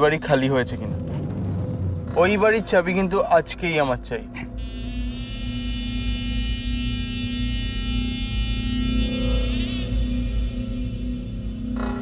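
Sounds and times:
low drone: 0.0s - 12.0s
dramatic synthesizer chord: 0.6s - 12.0s.

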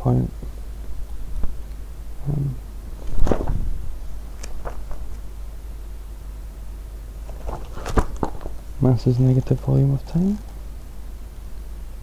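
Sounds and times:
steady low hum: 0.0s - 12.0s
man humming: 2.2s - 2.6s.

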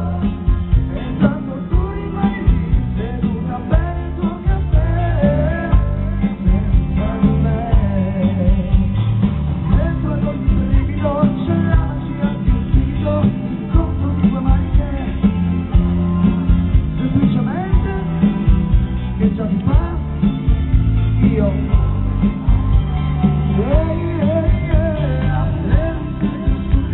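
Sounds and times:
man singing into microphone: 0.0s - 9.0s, 9.6s - 16.2s, 16.9s - 20.4s, 21.2s - 22.0s, 23.5s - 26.9s
bass and drum beat: 0.0s - 26.9s
guitar: 0.0s - 26.9s
live pop-rock band playing: 0.0s - 26.9s.

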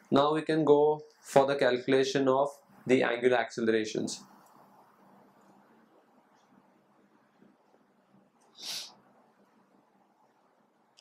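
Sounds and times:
nose sniff: 8.5s - 9.0s.

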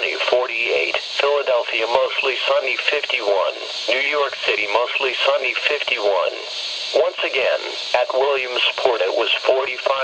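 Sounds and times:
voice through radio speaker: 0.0s - 10.0s.

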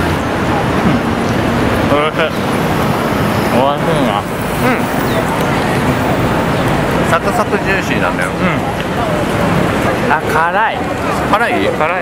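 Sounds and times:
road traffic passing: 0.0s - 12.0s
short vocal sounds: 0.8s - 1.2s, 4.6s - 5.0s.

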